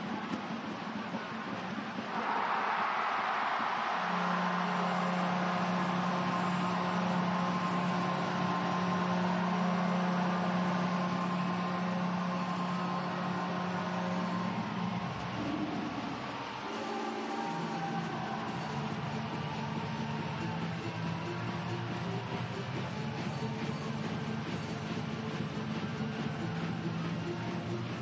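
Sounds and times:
crowd cheering: 0.0s - 28.0s
goal horn low note: 3.8s - 14.2s.

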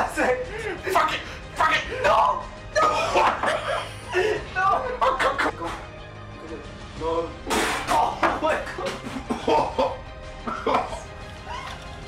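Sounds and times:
man retching and coughing: 2.8s - 4.4s, 7.5s - 8.1s, 8.8s - 11.2s.

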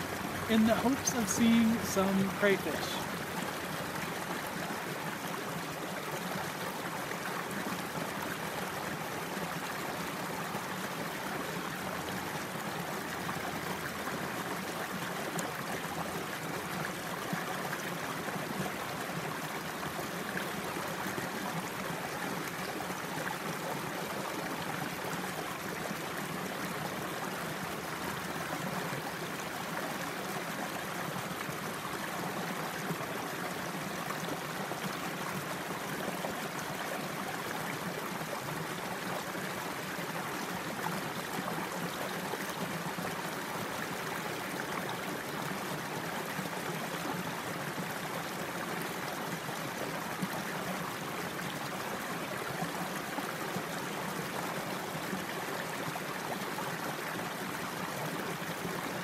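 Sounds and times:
water running over rocks: 0.0s - 59.0s.

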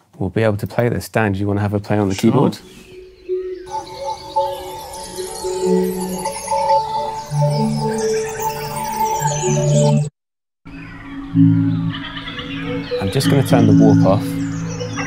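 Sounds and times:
bird chirps: 2.1s - 10.1s, 10.7s - 15.0s
resonant keyboard chords: 2.2s - 10.1s, 10.7s - 15.0s.

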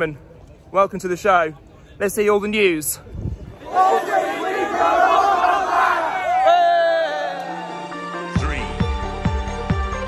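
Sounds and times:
crowd shouting: 3.6s - 8.1s.

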